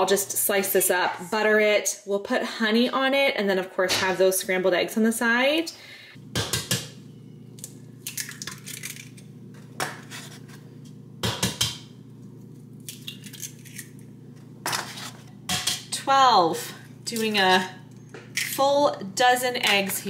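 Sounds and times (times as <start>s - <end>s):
eggshells cracking over bowl: 7.6s - 9.3s, 12.8s - 14.1s.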